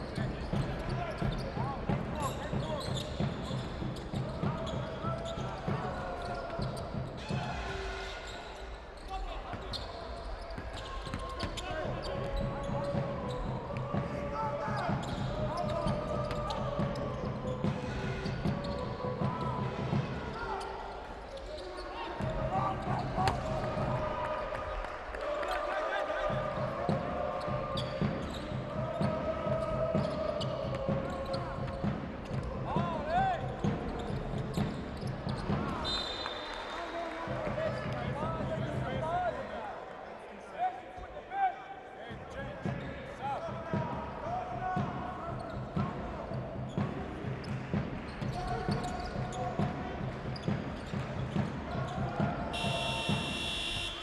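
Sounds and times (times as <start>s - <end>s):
sneakers squeaking: 0.0s - 23.9s, 26.9s - 36.4s, 44.8s - 54.0s.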